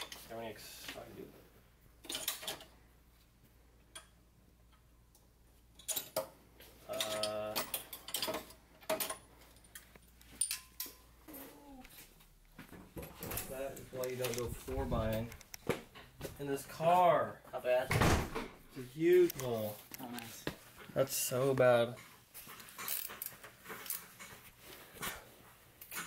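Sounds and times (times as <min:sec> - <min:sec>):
metal sockets clicking and rattling: 0:05.8 - 0:06.3.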